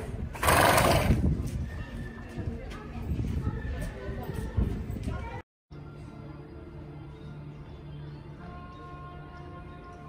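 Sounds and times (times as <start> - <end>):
horse snorting: 0.3 - 1.2.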